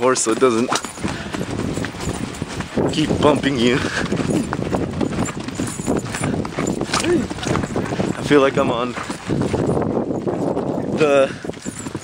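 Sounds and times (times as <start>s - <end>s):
horse hooves clopping on dirt: 0.0s - 12.0s.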